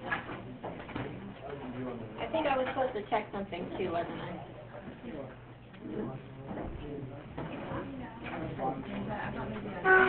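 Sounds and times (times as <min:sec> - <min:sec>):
distant murmur of voices: 0:00.0 - 0:10.0.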